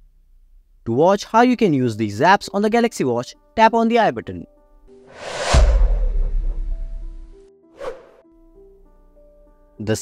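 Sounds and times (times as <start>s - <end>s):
soft background music: 0.8s - 10.0s
short swoosh: 5.1s - 8.2s
low boom: 5.2s - 7.4s.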